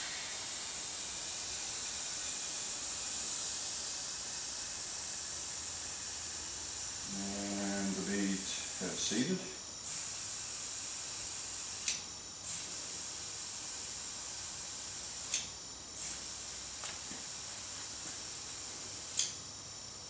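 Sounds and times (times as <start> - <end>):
compressed air hissing into tire: 0.0 - 19.4.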